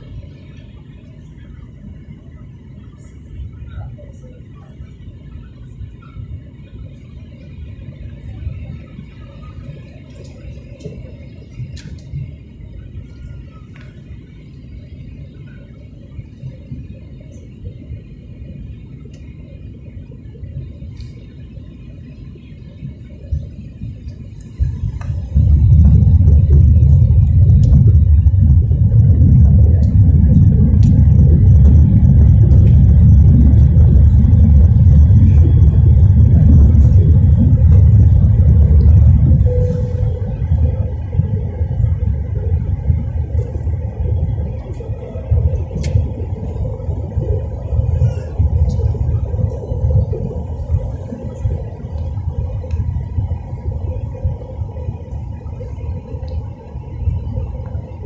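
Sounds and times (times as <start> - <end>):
airliner cabin engine rumble: 0.0 - 58.0.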